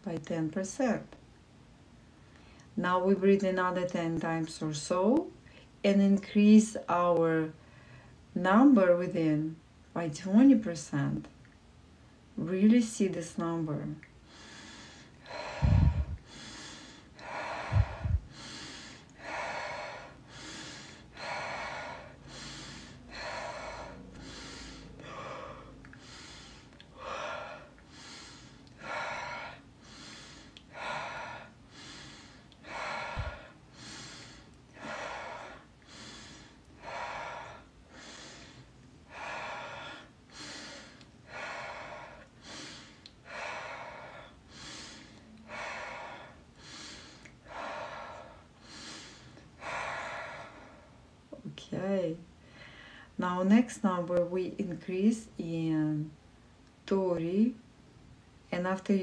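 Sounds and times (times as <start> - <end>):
woman breathing rapidly: 7.6 - 8.3, 14.1 - 51.4, 52.2 - 53.2
dull low thumps: 15.5 - 16.2, 17.6 - 18.3.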